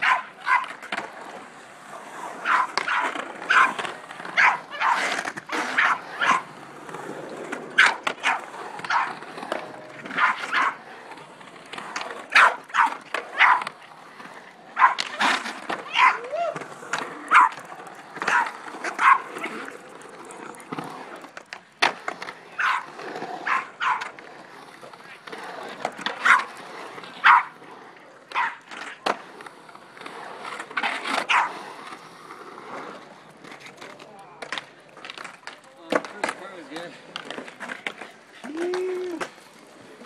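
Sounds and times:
small dog barking: 0:00.0 - 0:00.6, 0:04.4 - 0:05.0, 0:12.4 - 0:13.6, 0:14.8 - 0:15.0, 0:15.9 - 0:16.2, 0:17.3 - 0:17.5, 0:19.0 - 0:19.3, 0:23.4 - 0:24.0, 0:27.2 - 0:27.5, 0:31.3 - 0:31.5
skateboard wheels rolling on concrete: 0:00.0 - 0:40.0.

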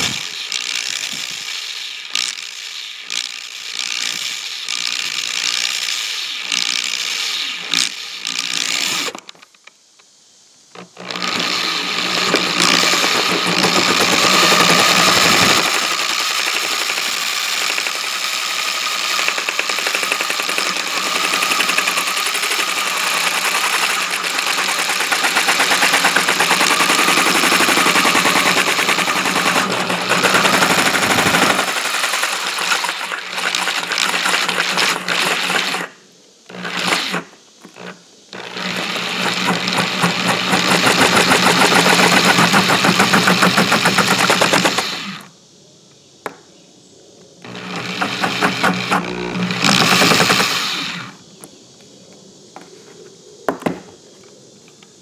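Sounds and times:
electric drill cutting plastic: 0:00.0 - 0:09.3, 0:10.8 - 0:45.3, 0:47.4 - 0:51.2
blade chattering against plastic: 0:12.2 - 0:35.9.

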